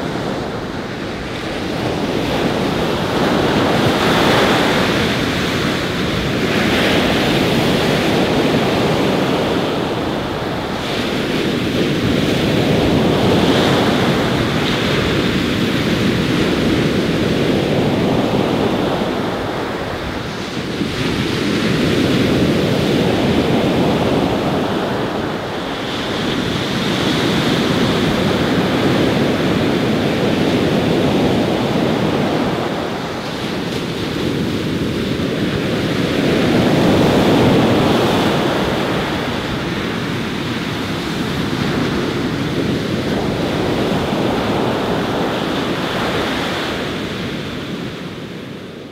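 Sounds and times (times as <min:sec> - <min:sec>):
waves breaking: 0:00.0 - 0:48.9.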